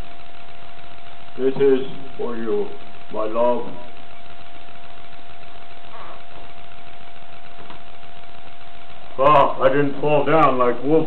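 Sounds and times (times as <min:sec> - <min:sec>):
faint high hum: 0:00.0 - 0:11.0
steady hiss: 0:00.0 - 0:11.0.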